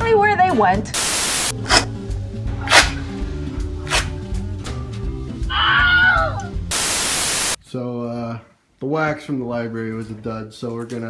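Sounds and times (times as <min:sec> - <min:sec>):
static hiss burst: 0:00.9 - 0:01.8, 0:06.7 - 0:07.6
background music with bass beat: 0:01.4 - 0:05.5.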